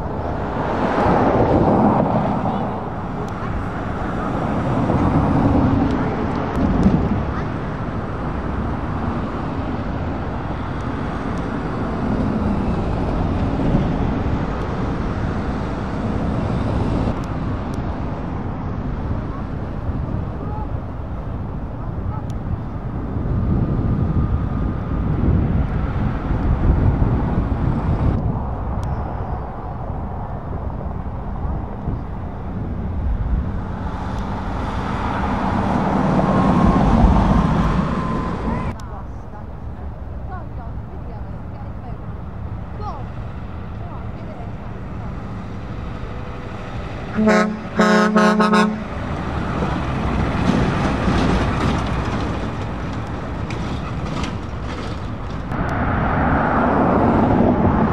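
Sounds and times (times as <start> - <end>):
vehicles driving past: 0.0 - 57.9.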